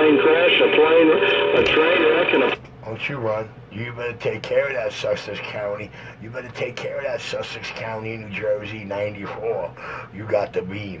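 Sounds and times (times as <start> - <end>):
garbled radio voices: 0.0 - 2.6.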